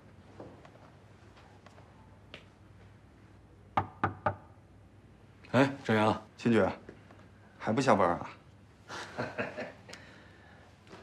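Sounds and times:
knocks on a wooden door: 3.8 - 4.4.

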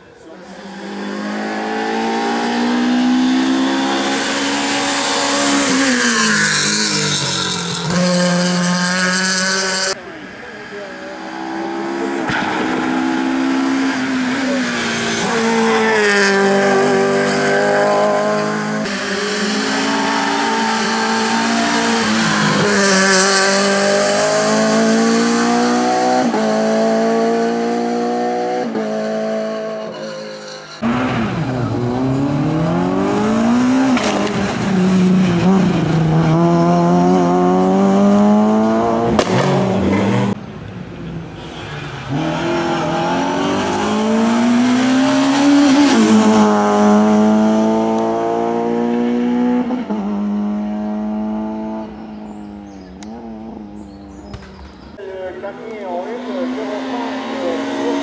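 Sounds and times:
car engine passing close: 0.0 - 29.9, 30.8 - 58.0
racing car engine at full throttle: 0.0 - 30.0, 30.7 - 58.0.

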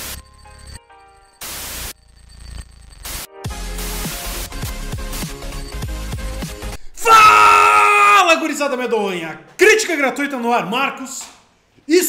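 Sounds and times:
crackling hiss: 0.0 - 3.3
white-noise static burst: 1.4 - 2.0.

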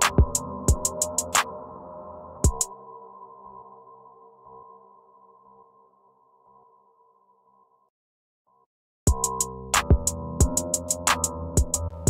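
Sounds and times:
held synthesizer chord: 0.0 - 6.1.

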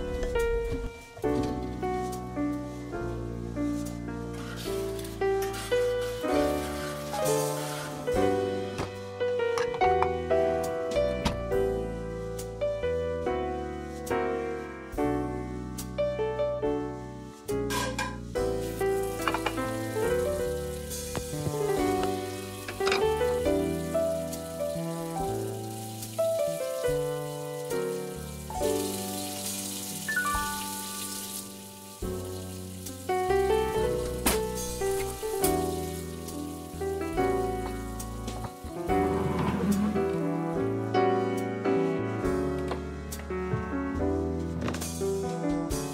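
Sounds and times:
piano music: 0.0 - 45.9
tap water running into sink: 18.8 - 40.2.

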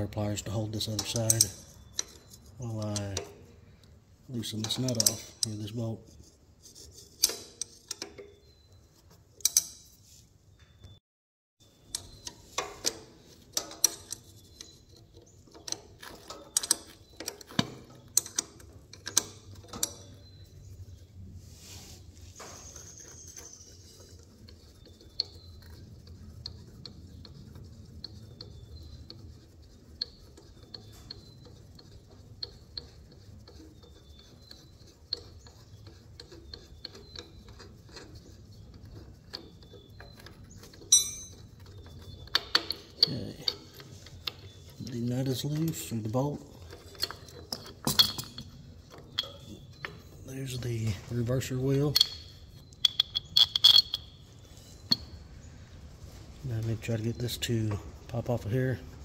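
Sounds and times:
ratcheting wrench clicking: 52.0 - 54.2.

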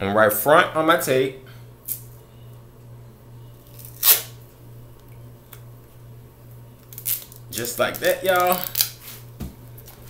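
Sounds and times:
low steady hum: 0.0 - 10.0
tape ripped from roll: 3.7 - 4.4, 6.9 - 7.4, 8.0 - 9.2.

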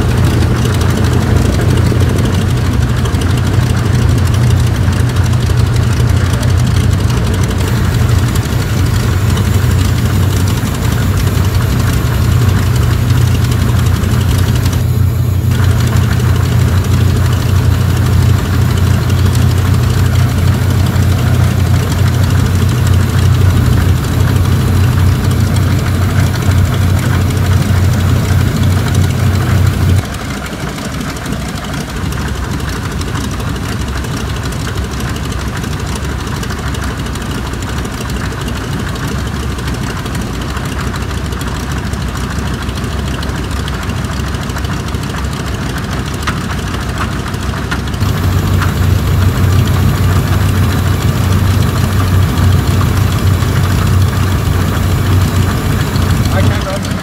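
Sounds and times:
aircraft engines droning: 0.0 - 57.0.

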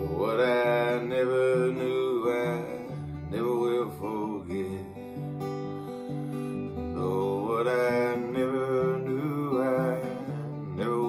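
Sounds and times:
man singing long notes: 0.0 - 11.0
strummed acoustic guitar: 0.0 - 11.0.

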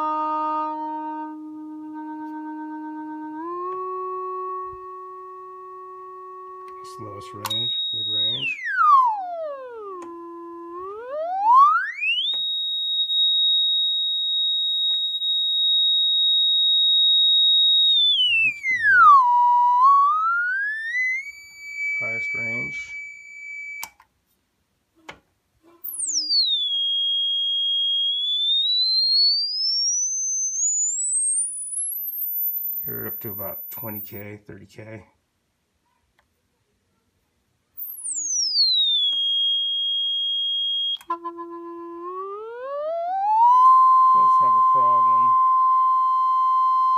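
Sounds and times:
sweeping sine tone: 4.4 - 13.2, 17.6 - 23.9, 25.8 - 34.2.

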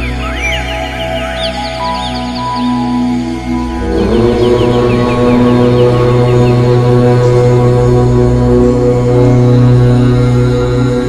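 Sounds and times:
low om chant drone: 0.0 - 11.0.

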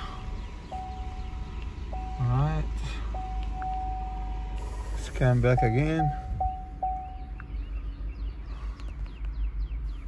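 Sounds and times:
car warning chime: 0.7 - 4.4, 5.2 - 7.4.

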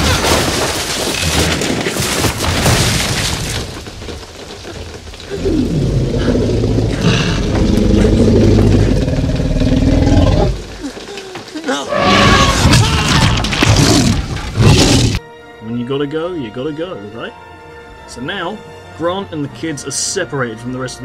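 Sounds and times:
wooden hut crashing and splintering: 0.0 - 6.0, 6.9 - 15.2
dinosaur growling: 5.3 - 11.0, 11.9 - 15.2.

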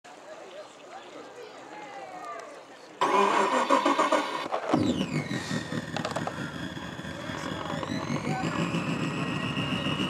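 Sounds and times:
engine starting up: 3.0 - 10.0.

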